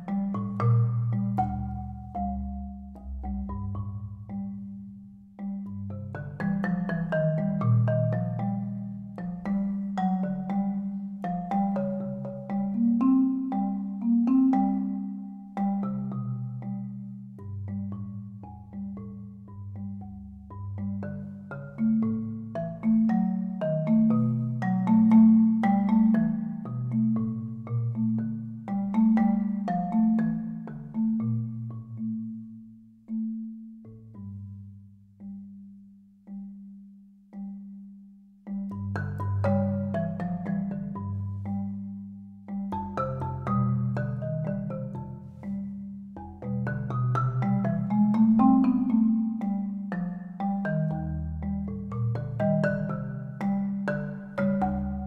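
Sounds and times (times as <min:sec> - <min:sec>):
solo marimba: 0:00.0 - 0:55.0.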